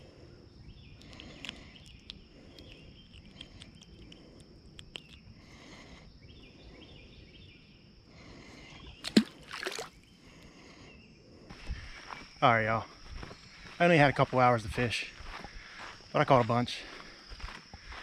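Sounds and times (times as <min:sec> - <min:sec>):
fish splashing into water: 0:09.0 - 0:10.0.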